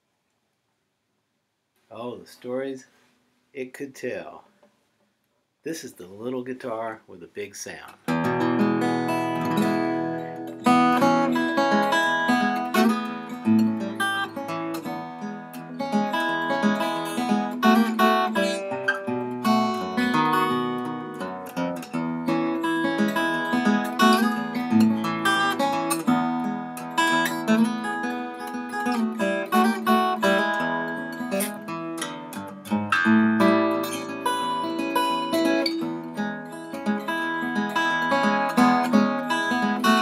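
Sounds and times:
acoustic guitar picking notes and chords: 0:08.0 - 0:40.0.

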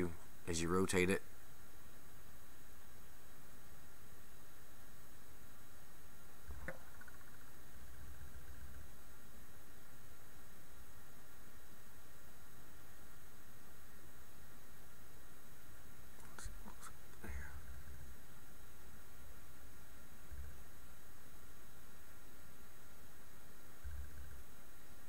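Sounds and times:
low hiss: 0:00.0 - 0:25.0.

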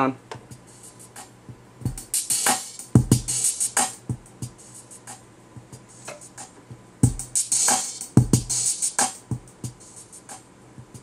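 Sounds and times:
programmed drum beat: 0:00.3 - 0:11.0.

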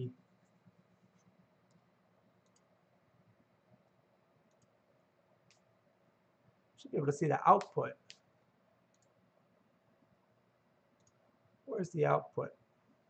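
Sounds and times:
computer mouse clicks: 0:01.2 - 0:02.7, 0:04.5 - 0:04.8, 0:08.9 - 0:09.2, 0:11.0 - 0:11.2.

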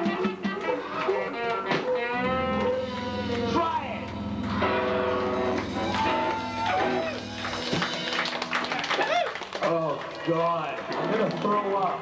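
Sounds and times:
people whooping: 0:05.0 - 0:09.5.

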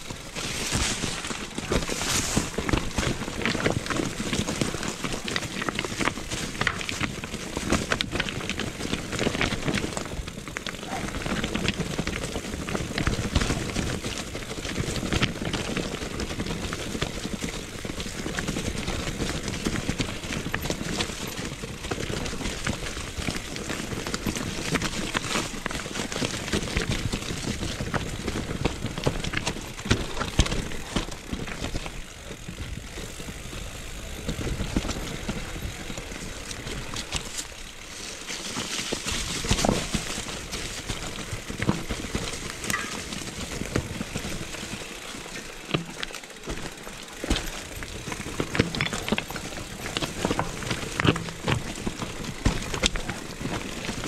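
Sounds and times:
bike rattling and knocking: 0:00.0 - 0:54.0
bike tyres on dirt and stones: 0:00.0 - 0:54.0.

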